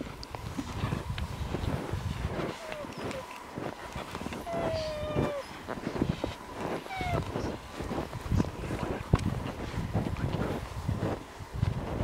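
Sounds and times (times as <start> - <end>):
skis swishing through snow: 0.0 - 12.0.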